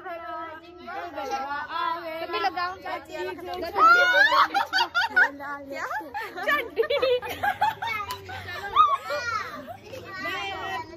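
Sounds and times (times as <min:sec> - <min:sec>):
young women laughing and calling out: 0:00.1 - 0:10.9.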